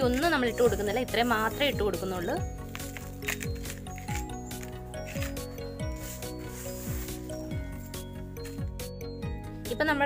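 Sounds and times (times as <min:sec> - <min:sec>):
soil scraping in plastic pot: 0:00.0 - 0:08.0
background music with beat: 0:00.0 - 0:09.8.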